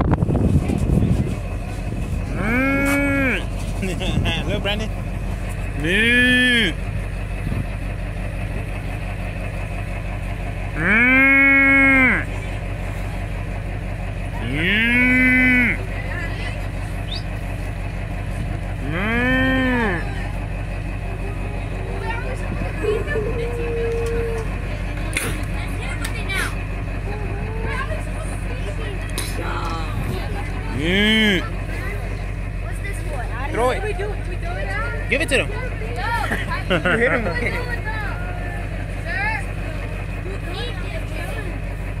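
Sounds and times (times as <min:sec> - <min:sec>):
vehicle engine rumbling: 0:00.0 - 0:42.0
high voices calling out: 0:02.3 - 0:03.6, 0:05.7 - 0:06.9, 0:10.7 - 0:12.6, 0:14.2 - 0:17.5, 0:18.8 - 0:28.4, 0:29.6 - 0:32.9
calf mooing: 0:10.8 - 0:12.3, 0:14.4 - 0:15.8.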